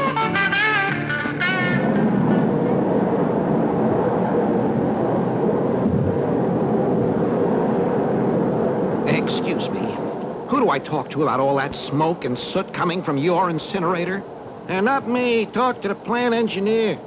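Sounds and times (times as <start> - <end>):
short guitar music cue: 0.0 - 2.8
faint even hum: 0.0 - 17.0.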